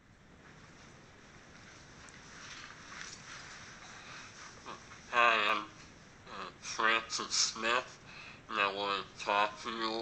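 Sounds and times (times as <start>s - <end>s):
room and microphone hiss: 0.0s - 10.0s.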